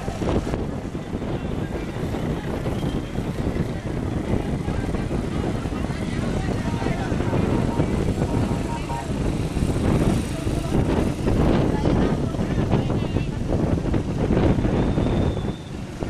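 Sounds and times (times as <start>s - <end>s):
indistinct crowd voices: 0.0s - 16.0s
small motorcycle engines running: 0.0s - 16.0s
wind buffeting microphone: 0.0s - 16.0s.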